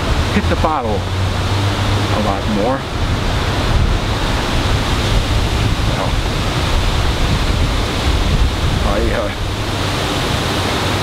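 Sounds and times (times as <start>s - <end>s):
wind on microphone: 0.0s - 11.0s.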